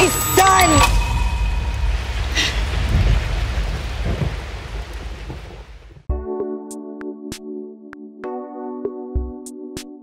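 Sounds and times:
deep rumble: 0:00.0 - 0:06.1
dense rain-like noise: 0:00.4 - 0:06.1.

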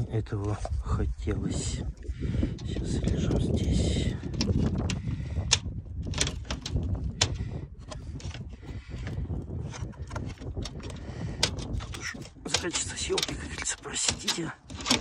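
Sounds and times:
plastic grille clicking and scraping: 0:02.4 - 0:15.0.

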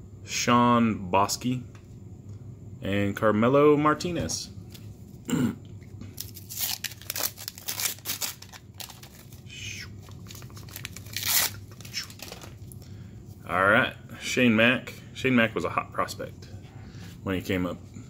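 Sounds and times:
card pack wrapper tearing: 0:06.2 - 0:09.4, 0:10.0 - 0:12.6.

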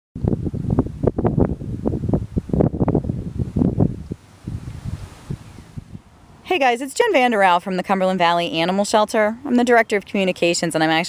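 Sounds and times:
wind buffeting microphone: 0:00.2 - 0:06.4.

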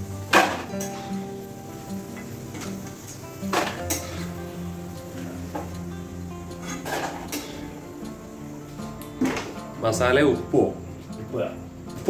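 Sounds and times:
background music held notes: 0:00.0 - 0:12.0.

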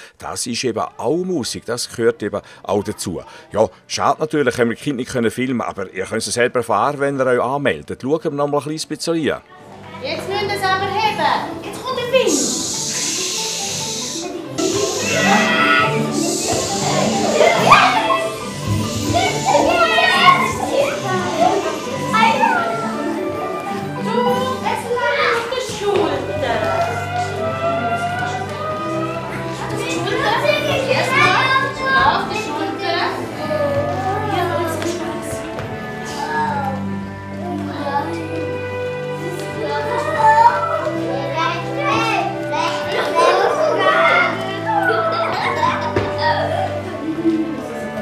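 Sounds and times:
music: 0:00.0 - 0:48.0
children calling out and squealing: 0:11.2 - 0:34.6, 0:39.6 - 0:47.7.

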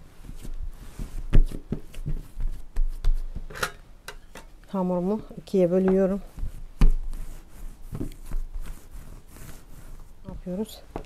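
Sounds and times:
dough slapping on stone countertop: 0:01.0 - 0:03.5, 0:05.8 - 0:08.8.

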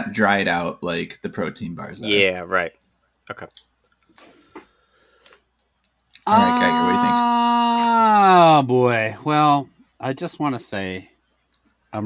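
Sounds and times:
person saying okay: 0:06.3 - 0:07.2.

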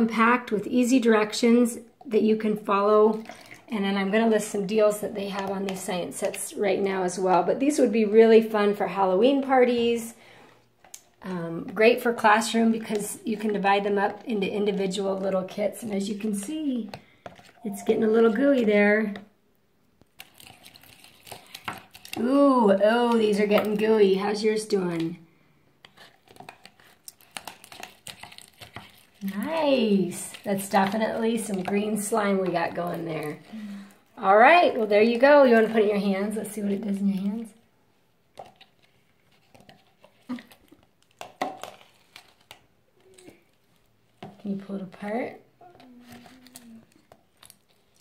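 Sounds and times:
plastic spoon stirring slime: 0:00.0 - 0:19.4, 0:20.0 - 0:25.2, 0:25.8 - 0:37.7, 0:38.3 - 0:48.0.

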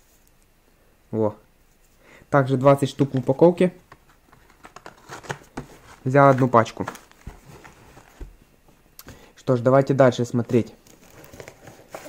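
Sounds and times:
soft knocks of cardboard pack: 0:03.0 - 0:08.4.

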